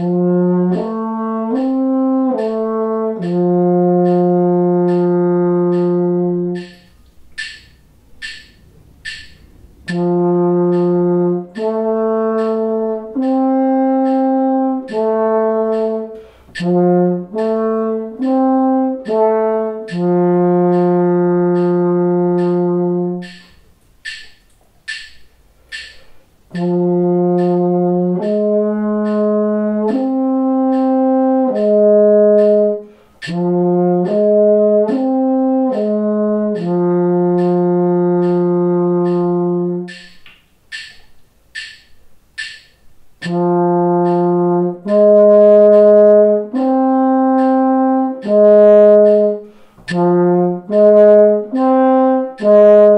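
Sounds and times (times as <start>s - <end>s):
french horn arpeggios: 0.0s - 6.9s, 9.8s - 23.6s, 26.5s - 40.1s, 43.2s - 52.9s
metronome clicking: 0.0s - 52.9s.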